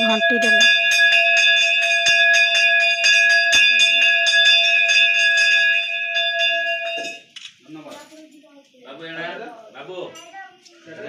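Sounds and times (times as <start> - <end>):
hand bell rung rapidly: 0.0 - 7.3.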